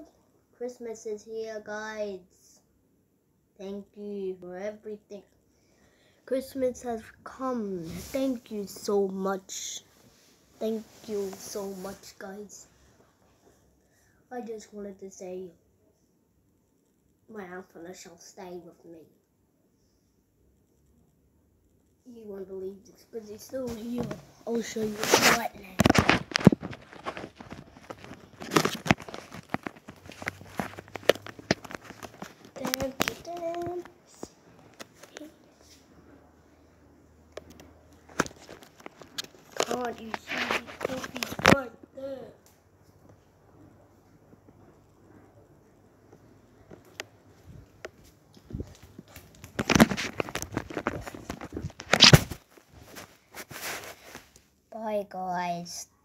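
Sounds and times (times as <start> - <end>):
faint steady hum: 0.0 - 56.0
clothing rustling on microphone: 6.8 - 9.1, 9.8 - 13.0, 23.2 - 36.2, 37.6 - 41.7, 46.0 - 54.5.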